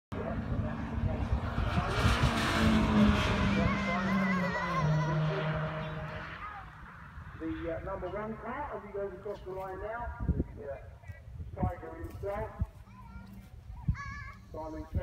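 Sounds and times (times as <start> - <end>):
racing car passing at speed: 0.1 - 8.9.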